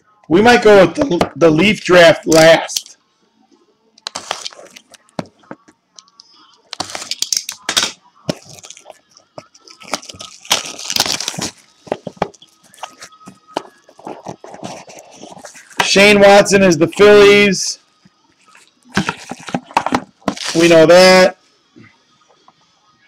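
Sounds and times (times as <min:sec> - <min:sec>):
plastic wrapping crinkling: 0:04.1 - 0:05.2, 0:06.7 - 0:15.9, 0:18.4 - 0:20.8.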